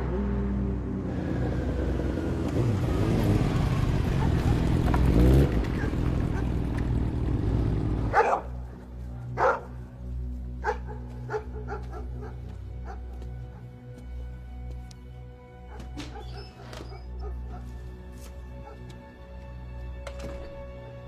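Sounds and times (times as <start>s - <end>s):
motorcycle engine running: 0.0s - 8.7s
dog barking: 8.1s - 8.6s, 9.3s - 9.8s, 10.6s - 13.6s, 15.6s - 17.8s, 18.6s - 18.9s.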